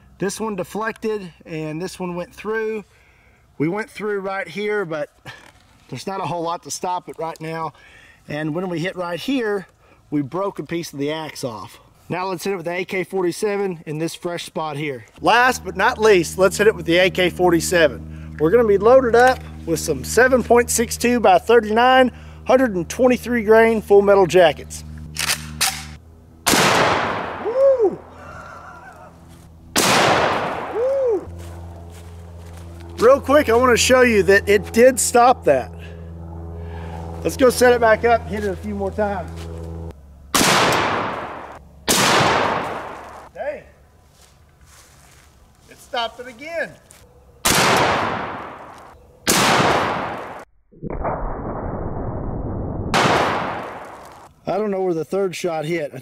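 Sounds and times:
rifle shot with echo: 25.2s - 27.5s, 29.8s - 30.8s, 40.4s - 43.0s, 47.4s - 50.4s, 52.9s - 54.1s.

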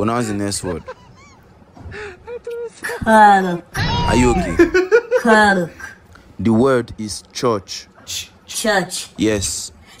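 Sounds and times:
voice: 2.5s - 5.8s.

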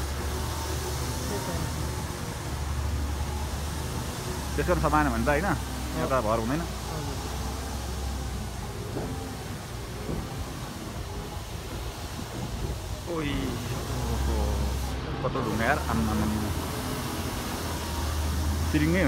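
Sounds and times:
vehicle engine running: 0.0s - 19.0s
voices: 0.0s - 19.0s.

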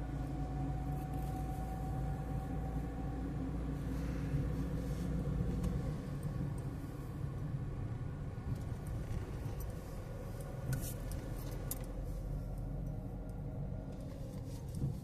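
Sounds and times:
car engine and tyre rumble: 0.0s - 15.0s.

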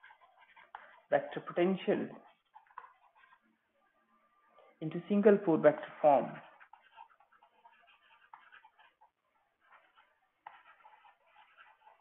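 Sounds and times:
stylus scratching on tablet: 0.0s - 3.8s, 4.6s - 12.0s.

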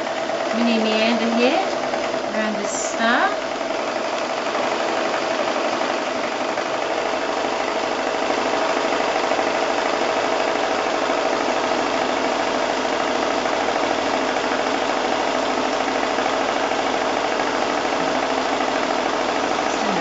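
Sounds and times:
sewing machine running: 0.0s - 20.0s.

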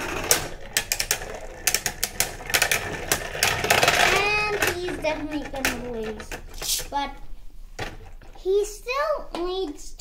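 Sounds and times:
child's drawn-out voice: 4.0s - 7.2s, 8.4s - 10.0s.

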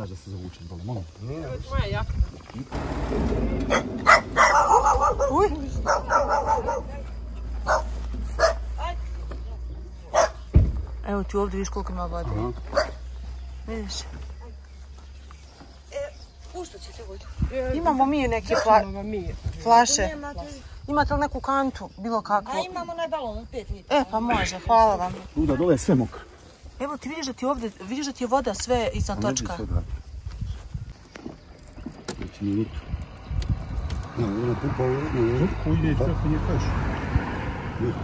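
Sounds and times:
low uneven rumble: 2.7s - 19.6s.

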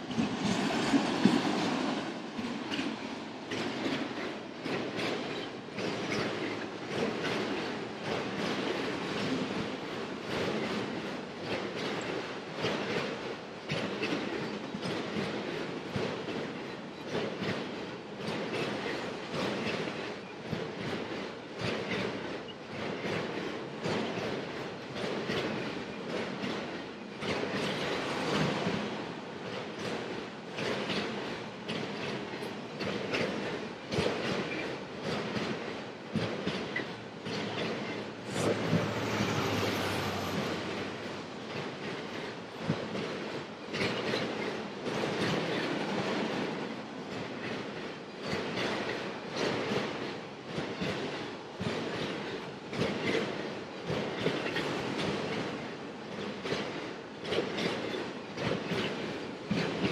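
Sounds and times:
train cars clattering: 0.0s - 59.9s
train wheels rumbling on rail: 0.0s - 59.9s
diesel locomotive engine drone: 37.0s - 44.0s.

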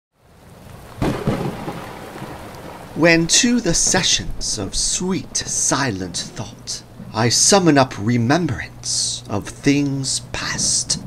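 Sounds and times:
steady rain: 0.1s - 11.0s
thunder rumble: 1.0s - 9.3s.

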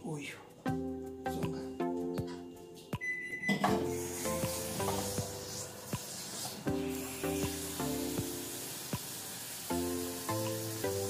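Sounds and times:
music with steady beat: 0.5s - 11.0s
kitchen tap running: 3.6s - 11.0s.

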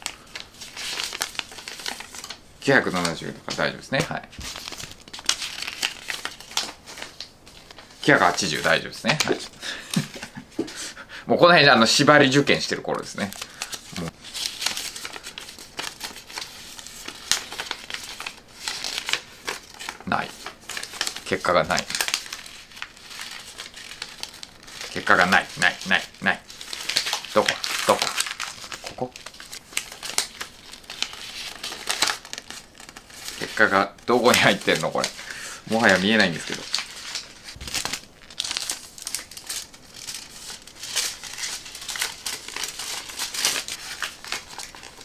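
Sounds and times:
paper crinkling and rustling: 0.0s - 10.8s, 11.8s - 45.0s.

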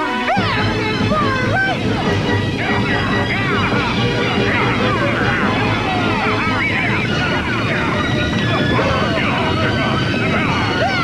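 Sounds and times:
steady noisy rumble: 0.4s - 11.0s
warbling squeals and chirps: 1.7s - 11.0s.

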